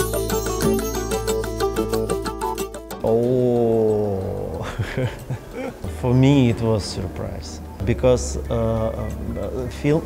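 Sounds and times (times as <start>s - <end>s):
man laughing: 4.4s - 5.9s.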